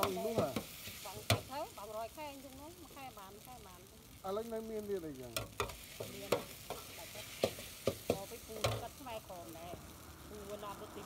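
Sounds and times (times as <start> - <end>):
food sizzling in a pan: 0.0 - 11.0.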